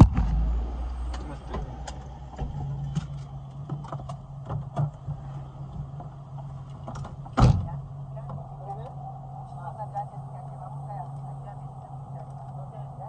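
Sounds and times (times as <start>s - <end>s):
car engine idling: 0.0s - 13.0s
car door shutting: 1.1s - 8.4s
faint voices: 7.6s - 13.0s.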